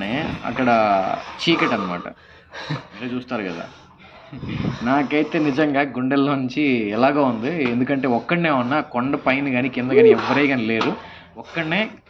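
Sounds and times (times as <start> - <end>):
man speaking: 9.9 - 10.5.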